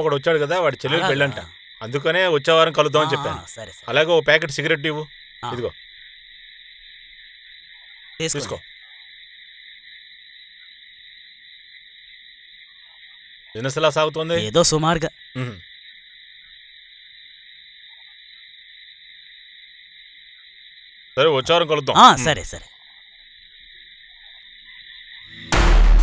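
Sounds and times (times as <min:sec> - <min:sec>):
man's voice: 0:00.0 - 0:05.7, 0:08.2 - 0:08.6, 0:13.6 - 0:15.6, 0:21.2 - 0:22.6
insects chirring: 0:00.0 - 0:25.6.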